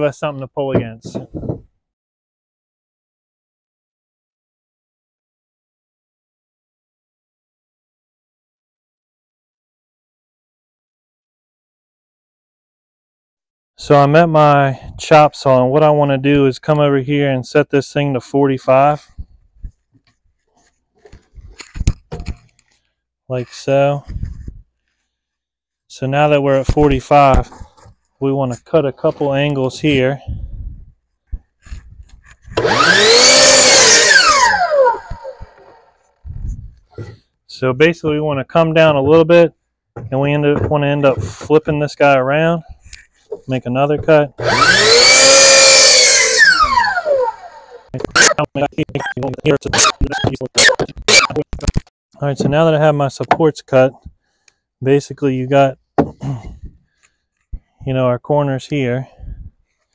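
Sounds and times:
saw blade cutting wood: 0:31.6 - 0:36.0, 0:44.0 - 0:48.5, 0:49.7 - 0:51.5
miter saw motor whining: 0:32.6 - 0:36.0, 0:44.4 - 0:48.4.

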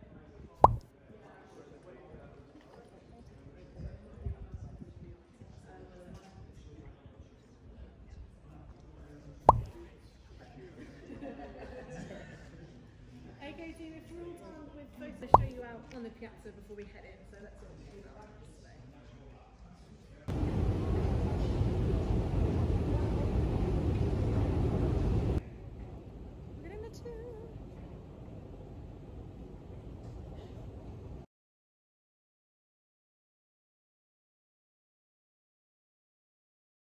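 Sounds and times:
faint background chatter: 0:00.0 - 0:29.2
sharp pop: 0:00.6 - 0:00.8, 0:09.5 - 0:09.7
escalator background noise: 0:20.3 - 0:31.2.

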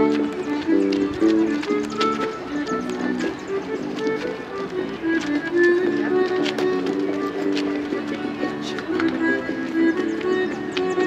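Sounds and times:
dance shoes clicking on pavement: 0:00.0 - 0:11.0
irish dance music: 0:00.0 - 0:11.0.

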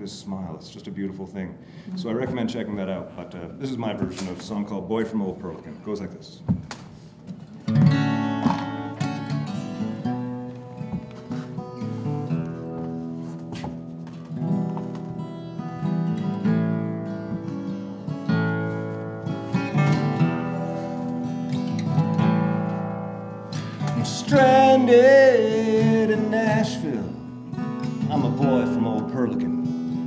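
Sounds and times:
acoustic guitar chords: 0:07.6 - 0:30.0.

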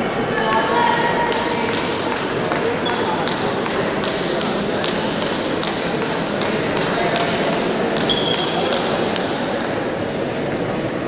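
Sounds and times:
crowded sports hall noise: 0:00.0 - 0:11.0
table tennis balls clicking: 0:01.3 - 0:09.4.

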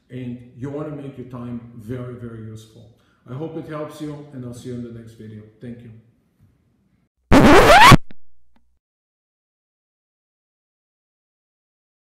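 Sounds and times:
rising scratch sound effect: 0:07.3 - 0:08.5.

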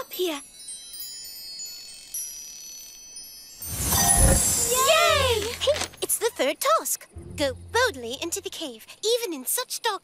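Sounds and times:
tinkling magic chime: 0:00.0 - 0:08.2.

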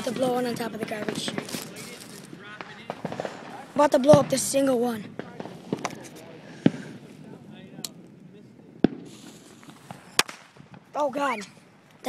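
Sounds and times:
firecrackers popping: 0:00.0 - 0:11.0.

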